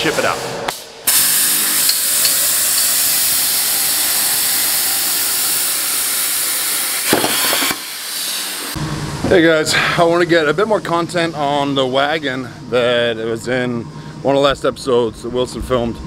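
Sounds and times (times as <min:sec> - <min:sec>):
plasma torch hissing: 0:00.0 - 0:08.8.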